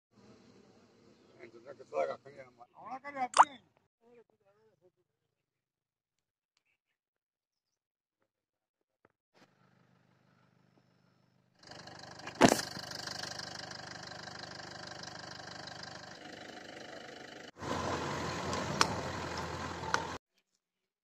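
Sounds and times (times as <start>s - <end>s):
car engine on dirt road: 11.6s - 20.2s.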